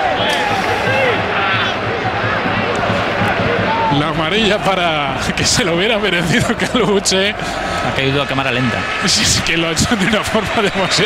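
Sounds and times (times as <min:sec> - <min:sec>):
stadium crowd noise: 0:00.0 - 0:11.0
men talking: 0:03.8 - 0:11.0.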